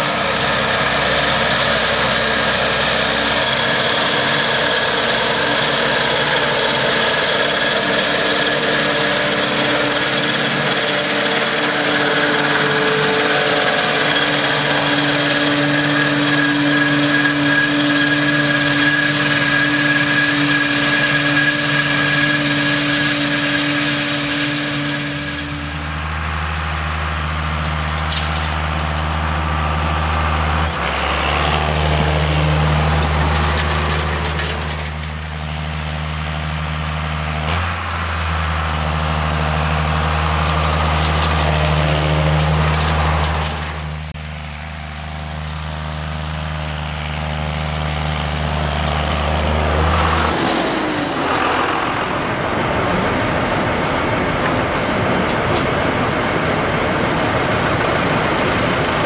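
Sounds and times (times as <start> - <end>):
mower whine: 0.0 - 59.0
tractor engine low tone: 0.0 - 59.0
tractor running a mower: 0.0 - 59.0.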